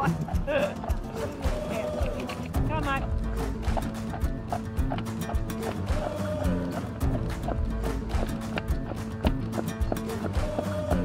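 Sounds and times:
horse hooves clip-clopping on dirt: 0.0 - 11.0
music playing: 0.0 - 11.0.

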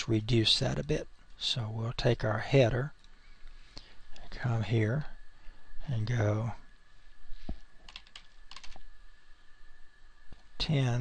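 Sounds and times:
keyboard keystroke clicks: 7.9 - 8.8.

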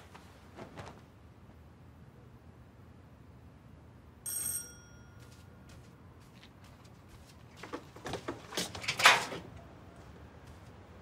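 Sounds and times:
doorbell ringing: 4.3 - 5.6.

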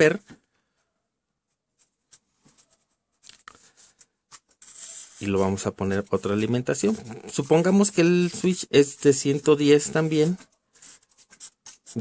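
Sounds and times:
marker pen scratching on paper: 3.6 - 12.0.

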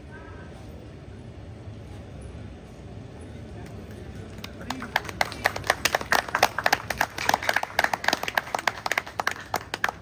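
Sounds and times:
people clapping: 3.6 - 10.0.

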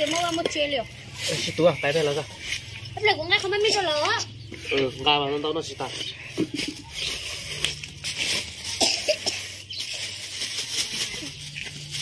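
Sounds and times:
plastic bag rustling: 5.6 - 12.0.

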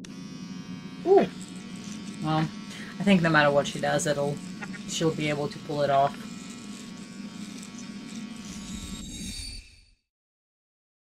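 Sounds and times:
low buzzing hum: 0.0 - 9.8.

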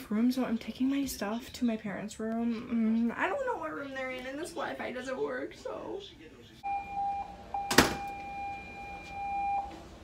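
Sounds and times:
steady electronic beep tone: 6.6 - 9.8.

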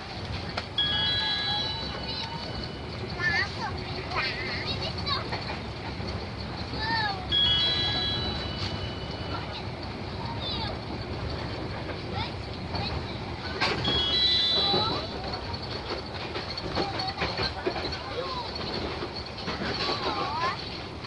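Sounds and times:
train wheels rumbling on rails: 0.0 - 21.0
high-pitched ringing tones: 0.8 - 5.4, 6.4 - 11.6, 13.6 - 17.4.

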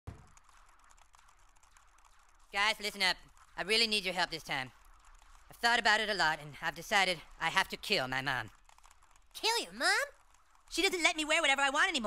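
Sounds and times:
game controller buttons clicking: 0.1 - 6.1, 7.6 - 12.0.

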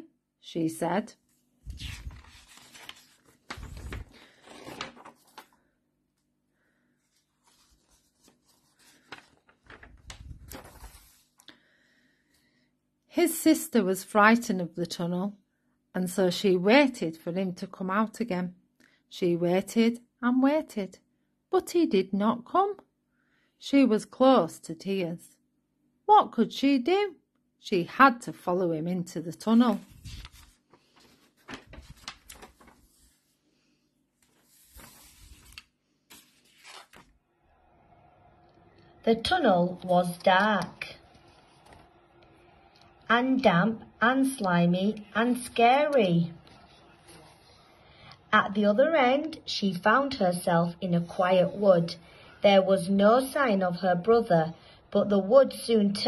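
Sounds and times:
paper page rustling: 1.6 - 5.7, 7.1 - 11.5, 29.4 - 33.4, 34.2 - 37.2, 39.8 - 41.9.

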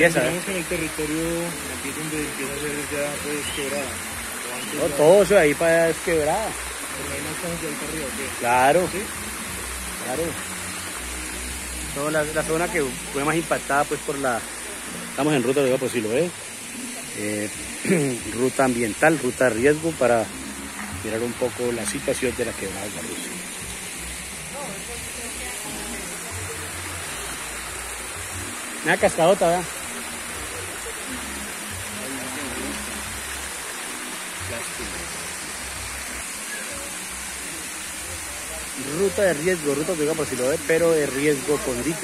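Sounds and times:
waterfall rushing over rocks: 0.0 - 42.0
faint voices: 20.9 - 39.6.

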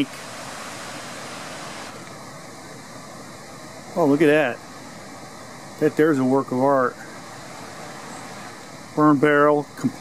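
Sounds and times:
even hum and hiss: 0.0 - 10.0.

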